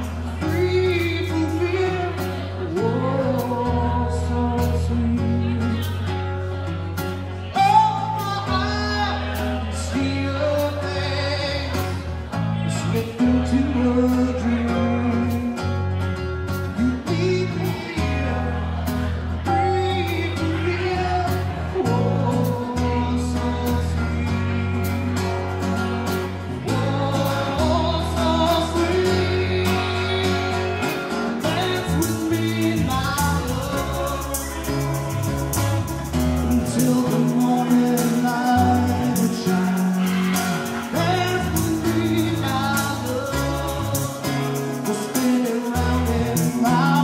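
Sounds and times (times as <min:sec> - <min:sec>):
acoustic guitar: 0:00.0 - 0:47.0
electric bass: 0:00.0 - 0:47.0
live band playing: 0:00.0 - 0:47.0.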